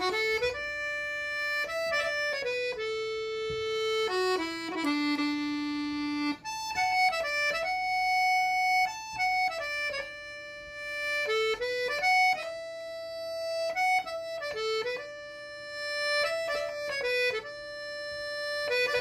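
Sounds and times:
piano accordion melody: 0.0 - 19.0.

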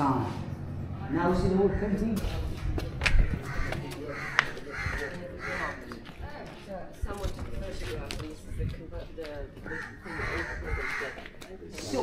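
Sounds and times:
faint background voices: 0.2 - 12.0
crows cawing: 3.1 - 6.0, 9.6 - 11.3.

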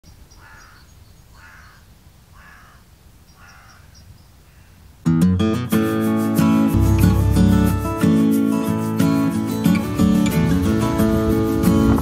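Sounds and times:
bird calling: 0.0 - 4.9
small birds chirping: 0.0 - 5.1.

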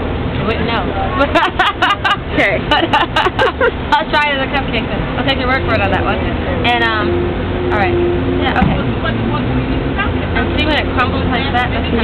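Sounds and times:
low background rumble: 0.0 - 12.0
voices talking indistinctly: 3.7 - 12.0.

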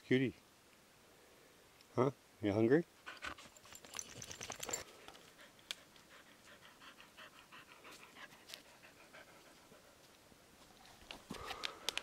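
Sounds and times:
dog panting: 3.0 - 10.1
rustle of movement: 3.0 - 12.0.

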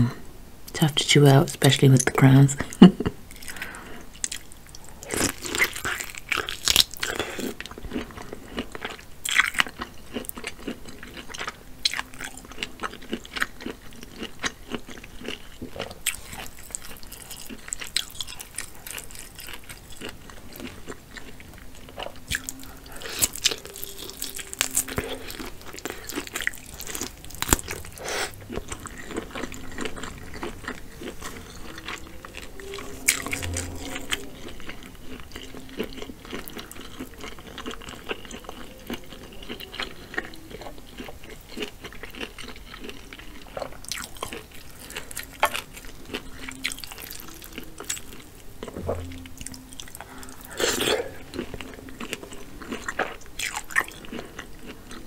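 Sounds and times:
wet chewing and biting: 3.3 - 55.0.

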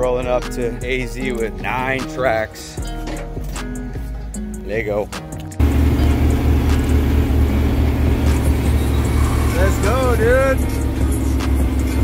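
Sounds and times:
diesel truck engine idling: 5.6 - 12.0.

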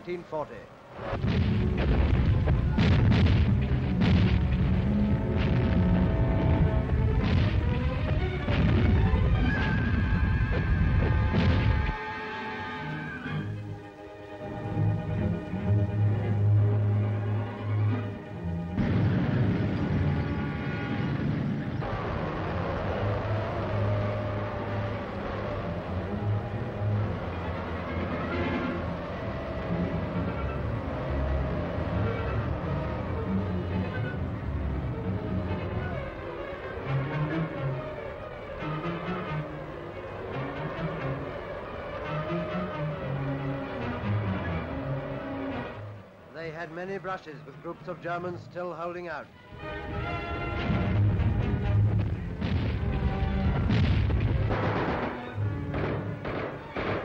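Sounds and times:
dramatic orchestral music: 0.1 - 57.0
low battle rumble: 0.9 - 12.0, 14.5 - 46.1, 49.5 - 57.0
sharp explosion blasts: 1.0 - 12.0, 18.7 - 24.0, 50.6 - 57.0.

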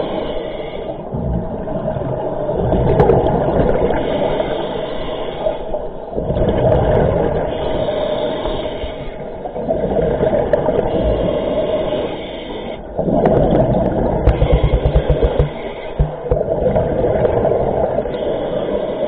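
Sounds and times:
regulator hissing inhale: 0.0 - 1.1, 4.1 - 5.8, 7.8 - 9.4, 11.2 - 13.0
exhaled bubbles rumbling underwater: 0.0 - 12.2, 12.8 - 19.0
steady hum: 14.2 - 16.7.

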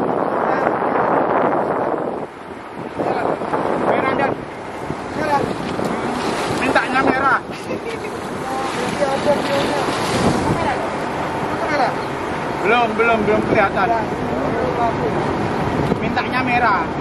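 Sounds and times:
sea washing around boat: 0.0 - 17.0
wind buffeting microphone: 0.0 - 17.0.

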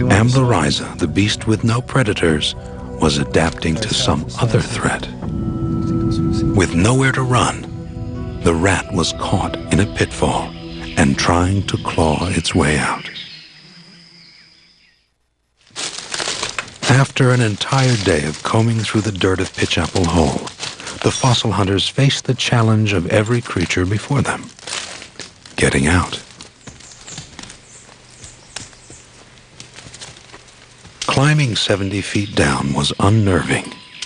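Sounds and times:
birds: 6.5 - 15.1, 16.2 - 34.0
insects: 9.0 - 34.0
knocks and scuffs on rock: 26.3 - 31.0
faint chirp: 31.7 - 34.0.

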